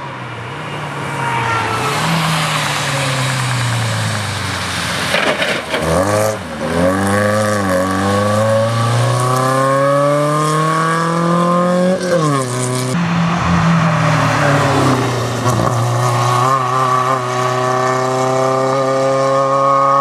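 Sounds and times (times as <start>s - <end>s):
rally car engine revving: 0.8s - 20.0s.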